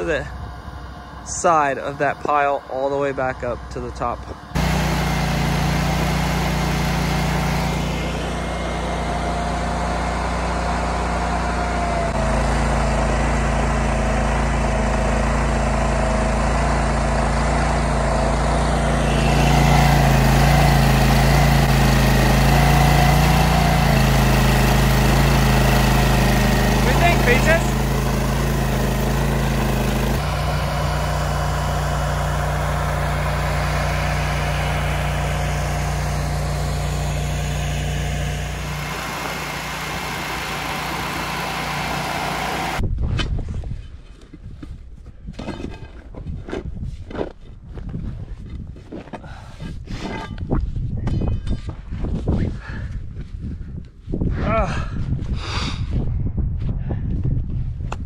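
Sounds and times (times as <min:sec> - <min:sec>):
trencher engine running: 0:00.0 - 0:42.8
digging chain cutting soil: 0:01.2 - 0:42.8.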